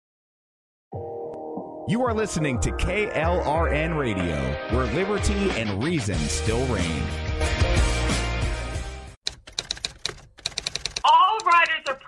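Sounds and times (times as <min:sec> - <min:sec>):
typewriter keys clacking: 0:09.2 - 0:12.0.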